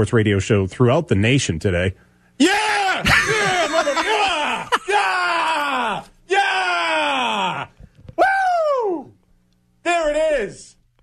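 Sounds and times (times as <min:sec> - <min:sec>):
man yelling in excitement: 0:02.4 - 0:09.1.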